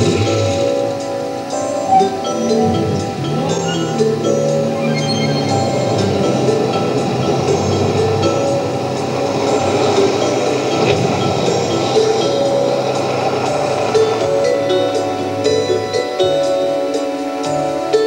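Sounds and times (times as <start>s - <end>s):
background music: 0.0s - 18.0s
car engine and tyres rumbling: 0.0s - 18.0s.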